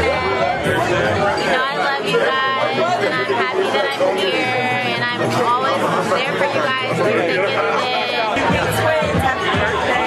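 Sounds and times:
people talking: 0.0s - 10.0s
bass of background music: 8.4s - 10.0s.

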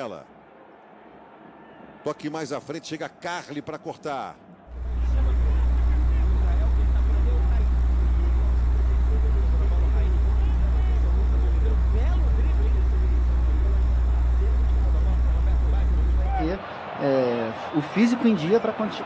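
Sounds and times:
stadium crowd noise: 0.0s - 19.0s
loud steady low hum: 4.7s - 16.6s
faint voices: 4.7s - 17.0s.

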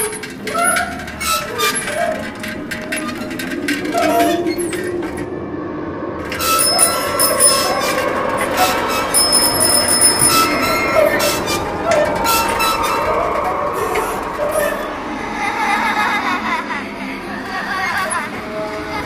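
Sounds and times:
metallic squealing and creaking: 0.0s - 15.4s
bell-like high tones: 6.0s - 14.9s.

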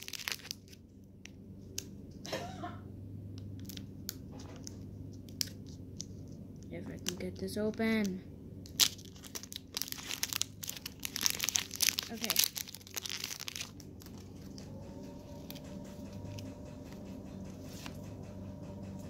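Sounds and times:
foil wrapper tearing and crinkling: 0.0s - 0.8s, 8.7s - 14.2s.

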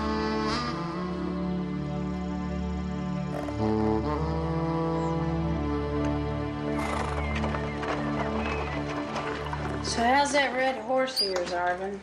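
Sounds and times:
horse whinnying: 3.3s - 3.9s, 6.5s - 9.9s
horse hooves clip-clopping: 5.5s - 12.0s.

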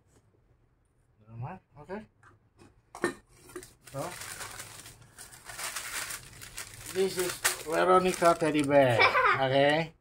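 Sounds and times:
baking paper rustling and crinkling: 3.4s - 9.0s.

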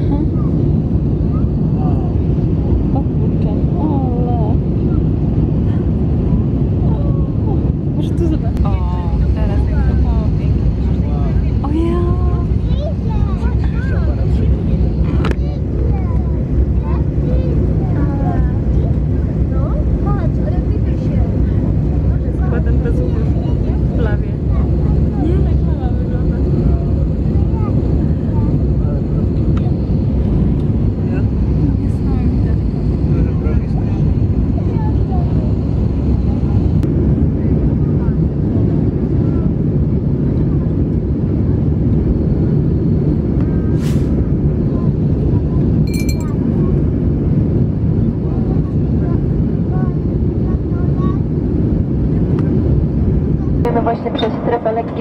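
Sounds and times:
jet cabin engine rumble: 0.0s - 55.0s
short high chime: 45.9s - 46.3s.

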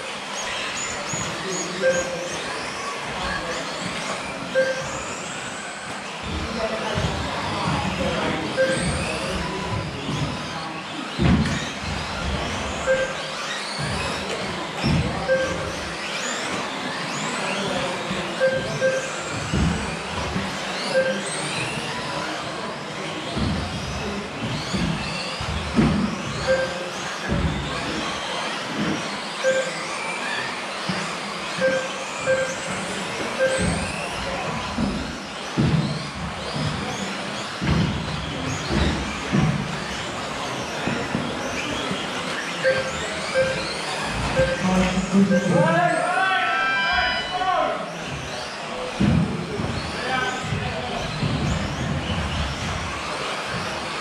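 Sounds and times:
electric model car motors whining: 0.0s - 54.0s
short electronic beeps: 1.8s - 2.2s, 4.5s - 5.0s, 8.6s - 9.1s, 12.8s - 13.3s, 15.3s - 15.8s, 18.4s - 19.2s, 20.9s - 21.4s, 26.4s - 26.8s, 29.4s - 29.9s, 31.6s - 32.8s, 33.4s - 33.9s, 42.6s - 45.8s.

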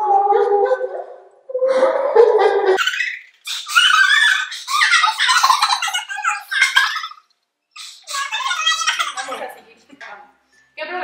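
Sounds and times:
young women laughing: 2.4s - 7.3s, 8.0s - 9.6s
young women shrieking: 2.8s - 5.4s.

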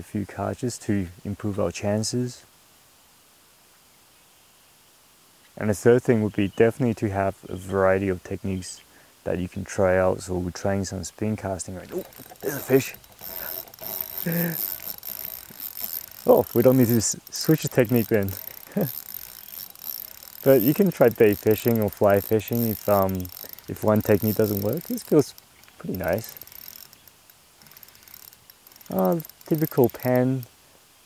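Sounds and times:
fishing reel clicking rapidly: 11.9s - 30.5s.

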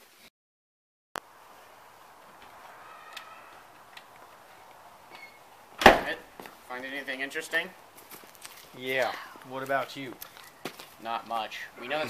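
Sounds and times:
front door shutting: 5.1s - 6.2s.

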